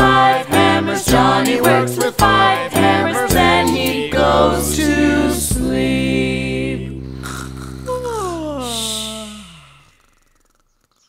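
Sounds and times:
children's song held chord: 0.0s - 7.1s
person yawning: 7.2s - 10.6s.

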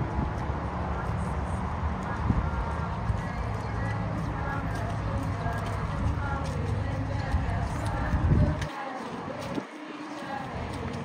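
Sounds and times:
footsteps on pavement: 0.0s - 11.0s
murmur of many voices: 0.0s - 11.0s.

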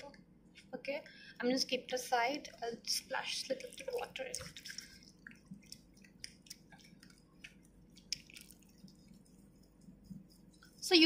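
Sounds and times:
water dripping: 2.3s - 11.0s
soft wet clicks of lather: 3.5s - 10.9s.

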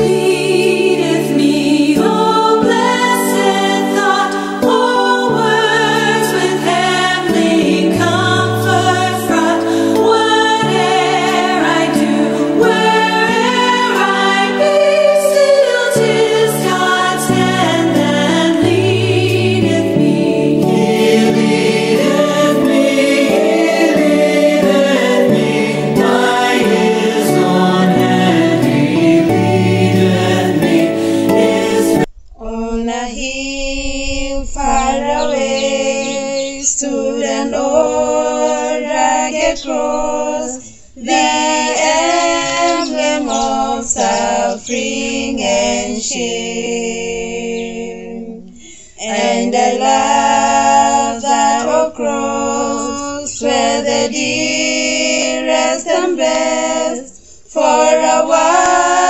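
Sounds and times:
choral gospel music: 0.0s - 59.0s
women singing unaccompanied: 0.0s - 59.0s.

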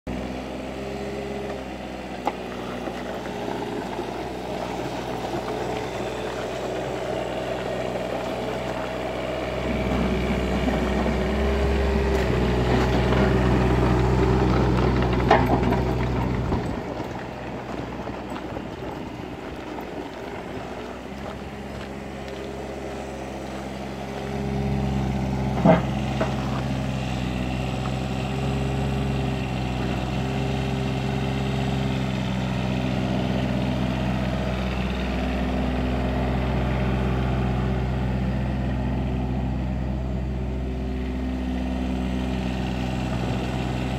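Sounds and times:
excavator diesel engine running: 0.1s - 43.9s.

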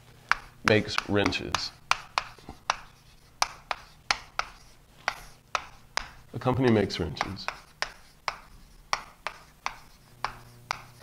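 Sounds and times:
chalk tapping on board: 0.3s - 11.0s
light rubbing of writing: 0.3s - 11.0s.

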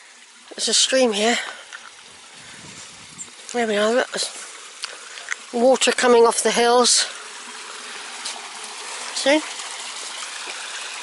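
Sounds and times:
stream trickling: 0.0s - 11.0s.

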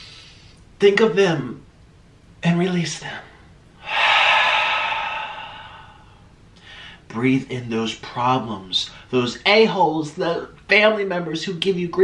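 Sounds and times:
man exhaling loudly: 3.8s - 6.9s.

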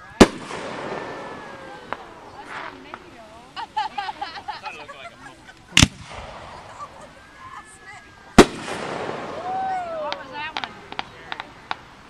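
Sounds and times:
rolling echo: 0.0s - 12.0s
firework shell bang: 0.1s - 3.3s, 5.8s - 6.9s, 8.4s - 11.8s.

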